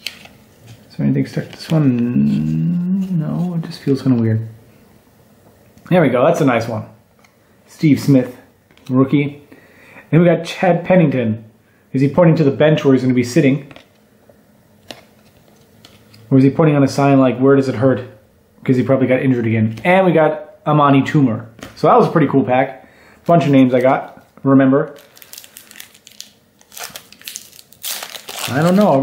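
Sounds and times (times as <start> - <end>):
paper cards shuffling: 0.0 - 2.0
foil wrapper crinkling: 23.3 - 29.0.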